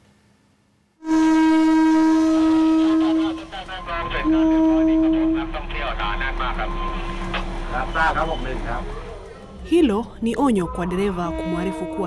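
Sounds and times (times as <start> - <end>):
train running hum: 1.1 - 12.0
people talking: 2.8 - 7.0, 7.7 - 12.0.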